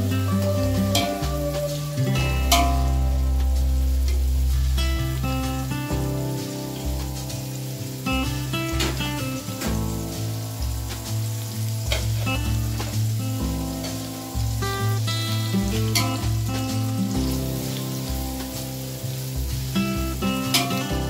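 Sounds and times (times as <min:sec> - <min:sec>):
background music with bass line: 0:00.0 - 0:21.0
onions and spices sizzling in oil: 0:00.0 - 0:21.0.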